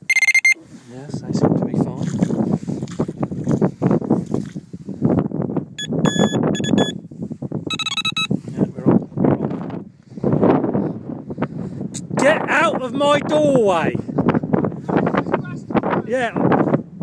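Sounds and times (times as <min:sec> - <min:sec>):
bite alarm beeps: 0:00.0 - 0:00.6, 0:05.8 - 0:07.0, 0:07.7 - 0:08.3
quick beeps at different pitch: 0:00.0 - 0:00.6, 0:05.8 - 0:07.0, 0:07.7 - 0:08.4
wind rumble on microphone: 0:00.6 - 0:17.0
microphone handling noise: 0:01.7 - 0:10.7.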